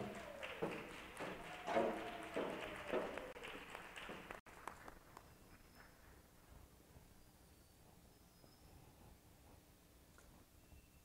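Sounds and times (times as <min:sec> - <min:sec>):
footsteps echoing on stage: 0:00.0 - 0:04.7.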